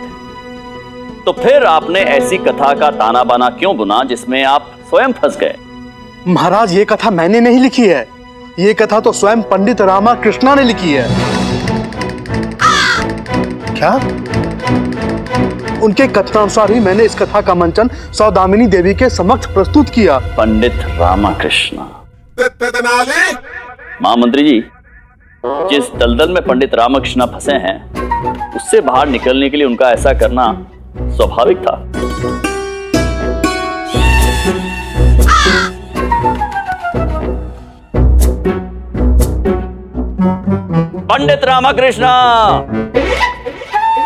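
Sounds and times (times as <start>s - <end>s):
background music: 0.0s - 44.0s
crow cawing: 12.6s - 13.2s, 35.2s - 36.1s.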